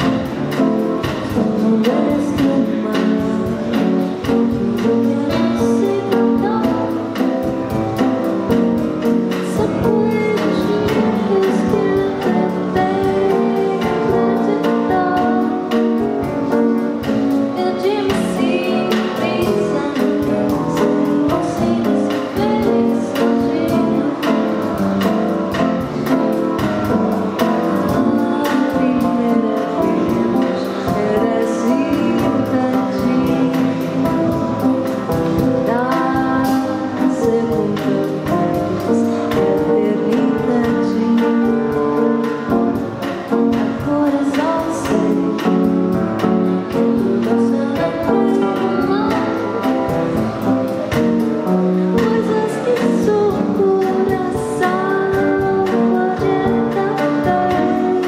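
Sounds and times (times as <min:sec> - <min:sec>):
acoustic band music: 0:00.0 - 0:58.0
person singing into a microphone: 0:09.4 - 0:16.0, 0:27.8 - 0:34.7, 0:35.3 - 0:42.1, 0:52.0 - 0:58.0.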